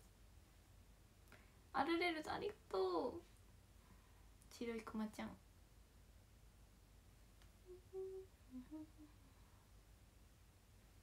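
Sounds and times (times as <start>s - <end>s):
woman humming softly: 7.6s - 9.5s.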